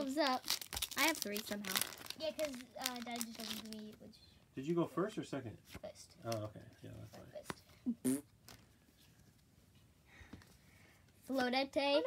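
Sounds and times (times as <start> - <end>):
handling trading cards: 5.6 - 7.8, 8.4 - 9.4.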